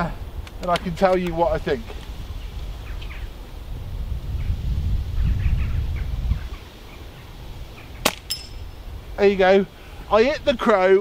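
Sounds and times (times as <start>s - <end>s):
wind buffeting microphone: 0.0s - 11.0s
faint bird calls: 2.2s - 3.5s, 4.4s - 8.9s.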